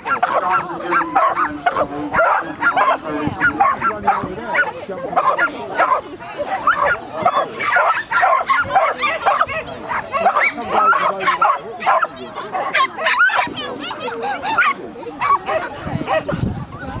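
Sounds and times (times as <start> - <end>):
people's voices: 0.0 - 17.0
dog yapping and barking: 6.7 - 13.8, 14.4 - 16.4.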